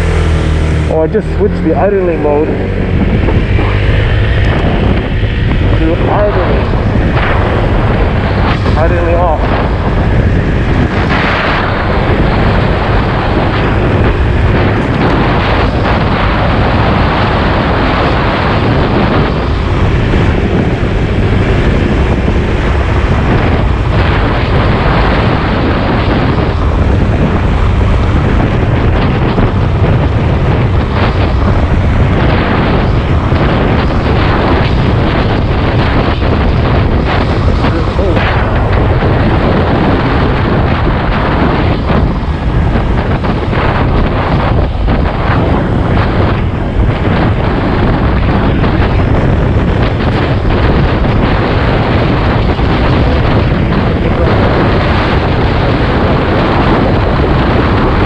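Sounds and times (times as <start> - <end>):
scooter running on road: 0.0 - 58.0
wind buffeting microphone: 0.0 - 58.0.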